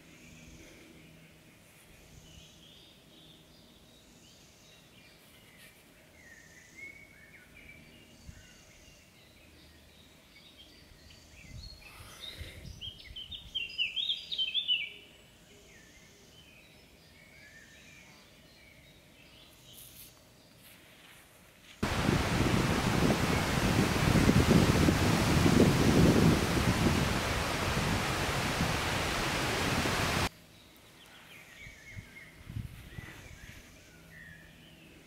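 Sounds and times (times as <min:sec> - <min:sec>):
birds singing: 0:00.1 - 0:20.6, 0:21.9 - 0:35.0.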